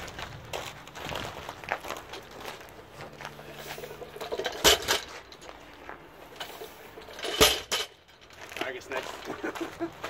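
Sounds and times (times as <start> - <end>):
metal plates clanking: 3.4 - 9.6.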